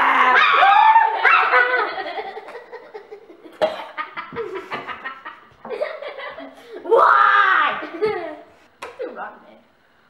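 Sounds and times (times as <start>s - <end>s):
drawn-out vocal outburst: 0.0s - 1.5s
boys laughing and giggling: 1.1s - 8.6s.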